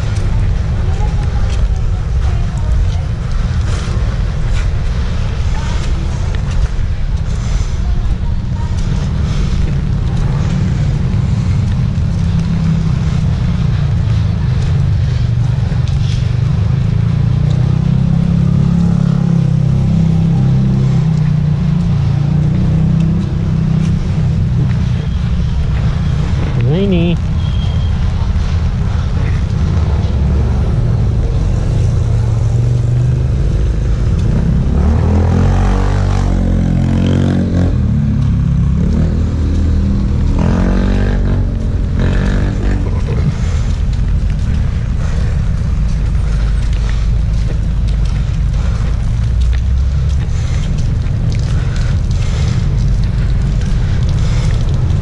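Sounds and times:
street traffic rumble: 0.0s - 55.0s
vehicle engine: 0.0s - 55.0s.

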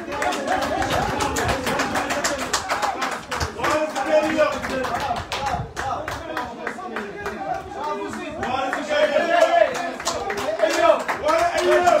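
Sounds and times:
crowd calling and chanting: 0.0s - 12.0s
crowd clapping: 0.0s - 12.0s.

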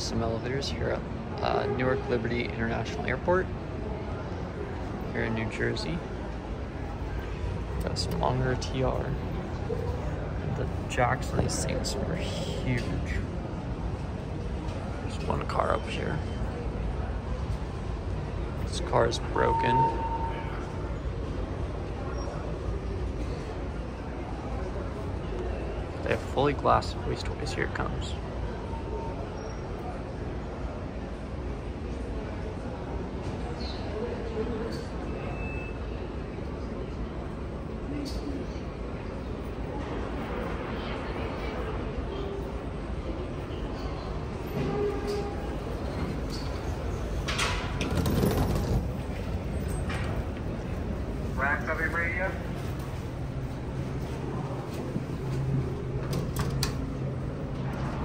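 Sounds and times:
distant murmur of voices: 0.0s - 58.0s
low rumble of terminal hall: 0.0s - 58.0s
elevator doors sliding: 17.3s - 22.7s, 43.5s - 51.8s, 52.6s - 58.0s.

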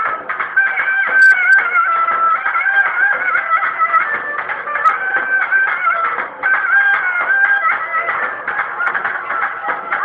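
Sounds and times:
shrill folk wedding music: 0.0s - 10.0s
sharp clicks: 1.1s - 1.6s.

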